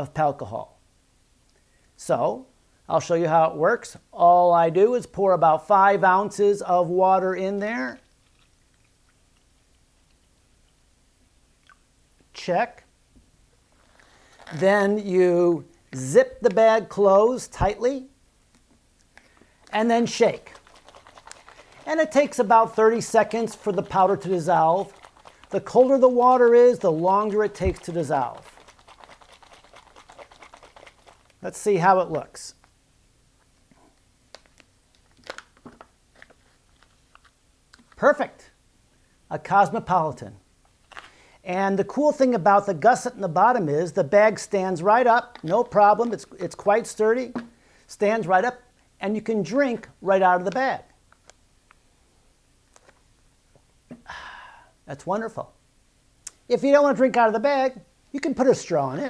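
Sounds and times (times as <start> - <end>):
water pouring into a foil pouch: 8.0 - 10.2, 20.0 - 31.4.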